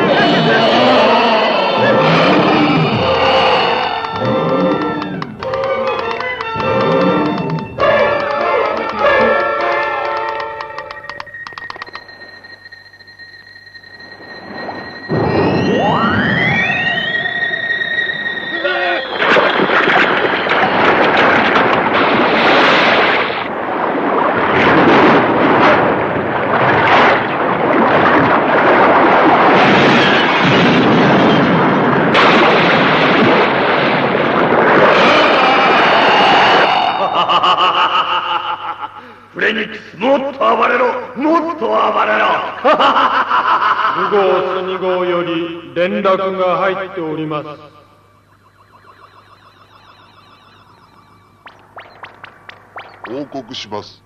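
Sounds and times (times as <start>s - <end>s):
high electronic tone: 0.0s - 21.1s, 47.3s - 54.0s
orchestral music: 3.1s - 11.2s
explosion rumble: 14.4s - 37.0s
man cackling laugh: 37.0s - 39.2s, 42.6s - 44.2s.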